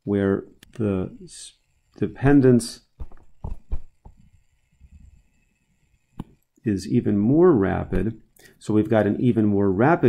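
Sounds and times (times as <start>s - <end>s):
stylus tapping on tablet: 3.0s - 4.3s.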